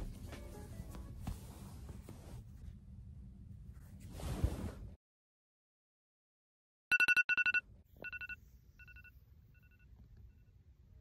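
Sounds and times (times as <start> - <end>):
phone alarm beeping: 6.9 - 9.9.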